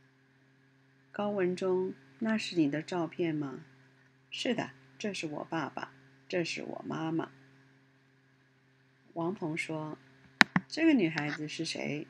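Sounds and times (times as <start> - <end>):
faint steady hum: 0.0 - 12.0
woman speaking: 1.2 - 3.6, 4.4 - 7.3, 9.2 - 10.0, 10.7 - 12.0.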